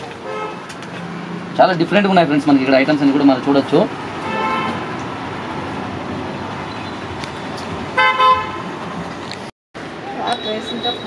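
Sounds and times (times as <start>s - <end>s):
steady background noise: 0.0s - 11.0s
horn toots: 4.2s - 4.9s, 8.0s - 8.7s.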